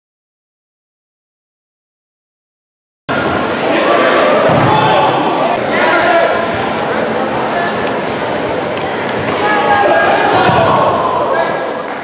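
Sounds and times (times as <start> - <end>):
crowd chatter echoing in a gym: 3.1 - 12.0.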